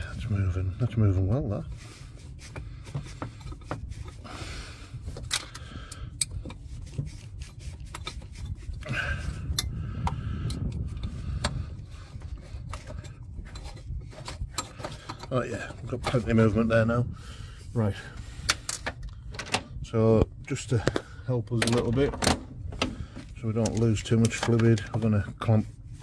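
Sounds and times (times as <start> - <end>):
rubber hose rubbing and scraping: 0.0 - 18.8, 20.5 - 26.0
light clicks and knocks: 18.5 - 25.5.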